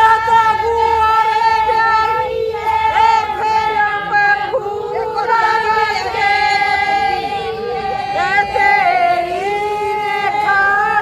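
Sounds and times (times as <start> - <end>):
women wailing a mourning lament: 0.0 - 11.0.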